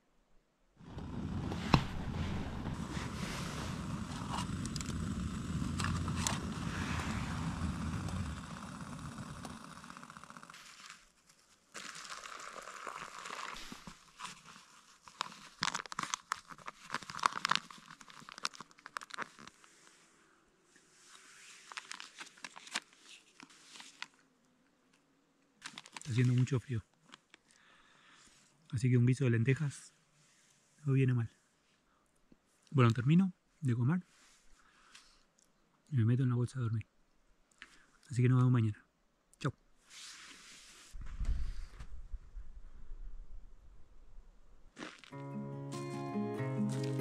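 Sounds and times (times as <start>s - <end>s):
rushing hiss with low rumble: 0.8s - 10.4s
food pouch crinkling and tearing: 10.5s - 19.7s, 21.6s - 24.2s, 25.6s - 26.4s.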